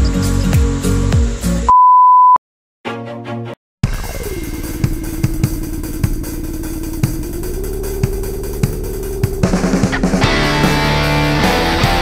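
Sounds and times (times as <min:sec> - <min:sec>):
high-pitched beep: 0:01.7 - 0:02.4
electronic music with bass sweeps: 0:03.8 - 0:12.0.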